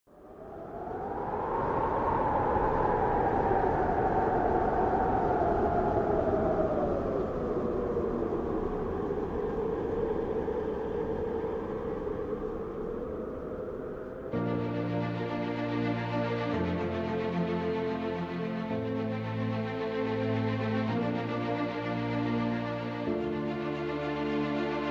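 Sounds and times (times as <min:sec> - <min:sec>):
wind gust blowing: 0:00.1 - 0:24.9.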